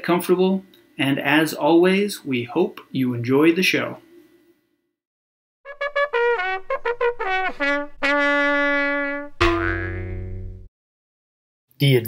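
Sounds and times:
held trumpet note: 0:05.7 - 0:10.7
low comic sound effect note: 0:05.7 - 0:10.7.

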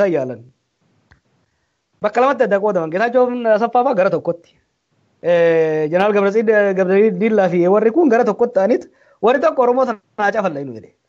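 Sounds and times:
man speaking: 0:00.0 - 0:00.5, 0:02.0 - 0:04.5, 0:05.2 - 0:11.0.

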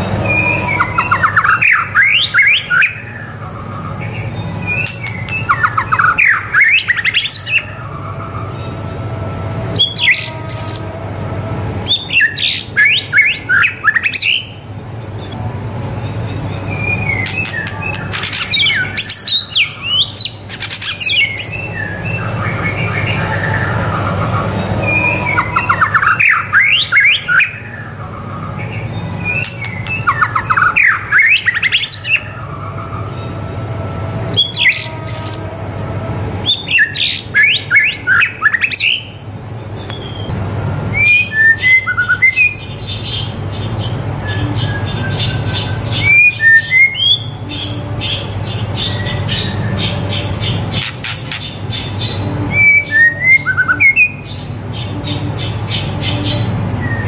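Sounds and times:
bird singing whistles and trills: 0:00.0 - 0:10.9, 0:11.8 - 0:35.5, 0:36.4 - 0:57.0
steady low hum: 0:00.0 - 0:57.0.

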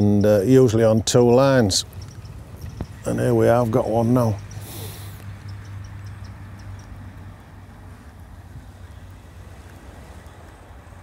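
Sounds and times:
outdoor background noise: 0:00.0 - 0:11.0
faint high ticks: 0:01.8 - 0:03.0, 0:04.4 - 0:07.2.

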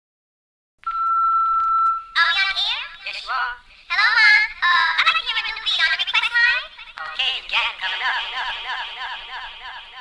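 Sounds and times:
high electronic beep tone: 0:00.8 - 0:02.2.

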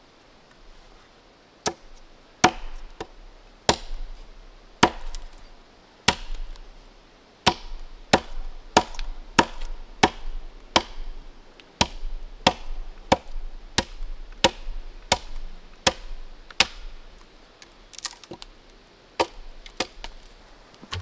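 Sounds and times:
axe chopping into wooden log: 0:02.4 - 0:03.1, 0:03.7 - 0:04.0, 0:04.8 - 0:05.3, 0:06.1 - 0:06.6, 0:07.5 - 0:11.1, 0:11.8 - 0:16.9.

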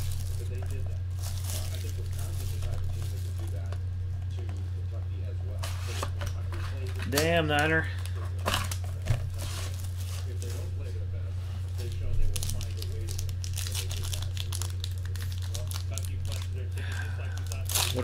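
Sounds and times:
foil and plastic wrapper crinkling: 0:00.0 - 0:18.0
low electrical hum: 0:00.0 - 0:18.0.

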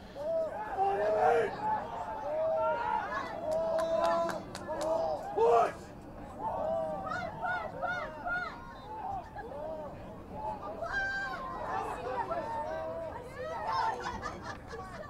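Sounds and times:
loud yell: 0:00.2 - 0:05.8
people shouting: 0:00.2 - 0:09.7.

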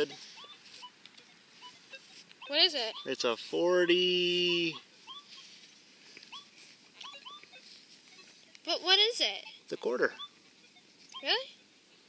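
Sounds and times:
small animal squeaky calls: 0:00.0 - 0:12.0.

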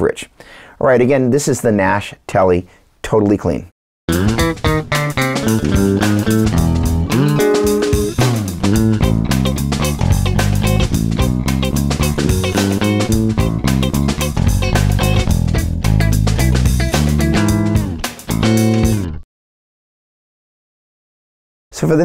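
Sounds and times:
drum loop: 0:04.1 - 0:19.1
bass guitar line: 0:04.1 - 0:19.2
clean electric guitar: 0:04.1 - 0:19.2.

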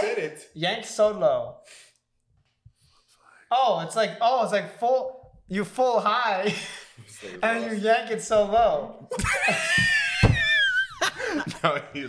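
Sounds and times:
dull thumps: 0:09.2 - 0:10.8.

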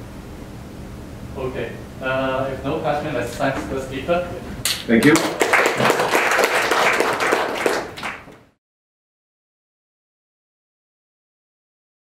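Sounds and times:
audience applauding: 0:05.0 - 0:08.6.

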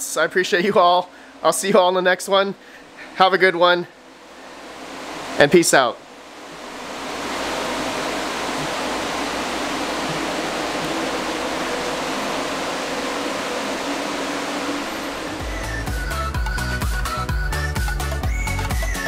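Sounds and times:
cooling fans whooshing: 0:00.0 - 0:19.0
electronic music: 0:05.3 - 0:19.0.

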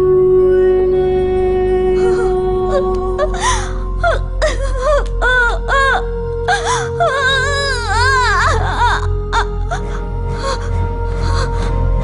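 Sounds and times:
sad film score: 0:00.0 - 0:12.0
woman wailing: 0:02.0 - 0:10.7
woman sobbing: 0:02.0 - 0:12.0.

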